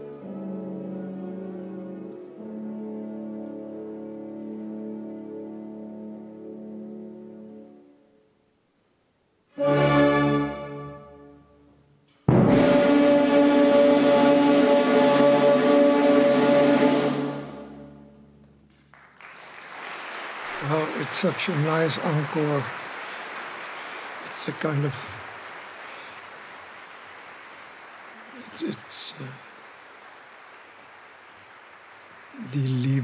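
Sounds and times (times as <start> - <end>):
faint steady hiss: 0.0 - 12.3, 17.8 - 33.0
orchestra holding final chord: 12.3 - 18.0
audience applause: 18.7 - 33.0.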